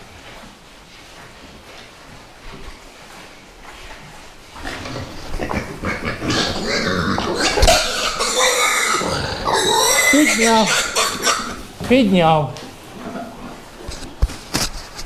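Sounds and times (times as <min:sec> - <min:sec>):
pig squealing loudly: 0:04.6 - 0:11.7.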